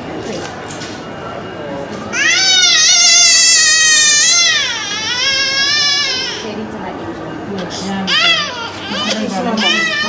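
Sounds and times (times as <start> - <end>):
baby crying: 2.2 - 6.5, 8.0 - 10.0.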